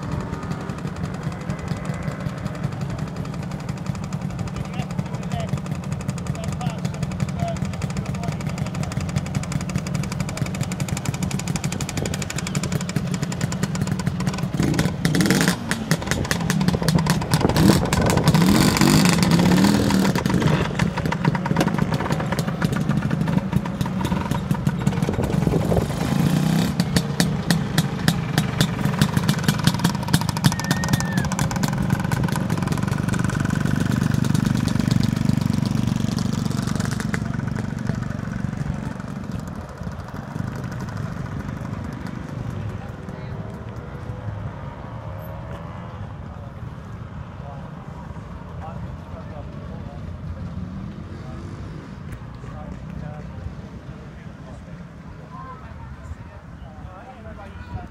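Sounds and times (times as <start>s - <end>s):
two-stroke scooter engine revving: 0.0s - 43.3s.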